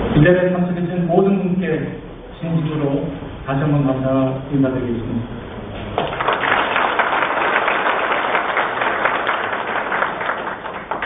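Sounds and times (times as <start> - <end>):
audience applauding: 6.0 - 11.0.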